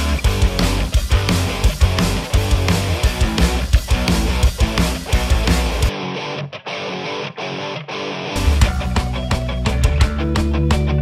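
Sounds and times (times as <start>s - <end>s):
electric guitar strummed chords: 0.0s - 11.0s.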